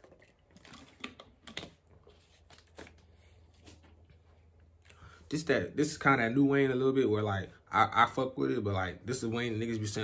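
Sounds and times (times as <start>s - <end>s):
plastic bottle crinkling: 0.0s - 4.0s.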